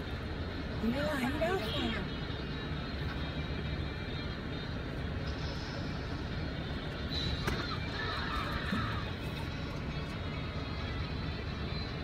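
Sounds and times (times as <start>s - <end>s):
car engine rumble from inside: 0.0s - 12.0s.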